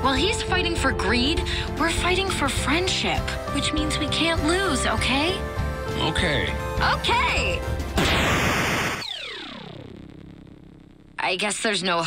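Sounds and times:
chiptune falling buzzy tone: 0:08.0 - 0:11.2.

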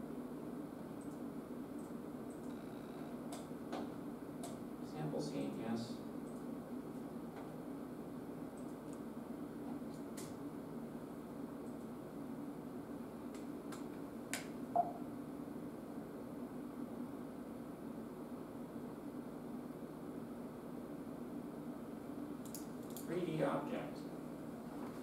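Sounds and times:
low machine hum: 0:00.0 - 0:25.0.

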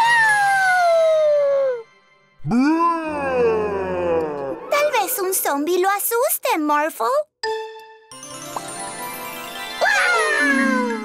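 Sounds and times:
cartoon voice spooky howl: 0:02.4 - 0:04.8, 0:09.8 - 0:11.0.

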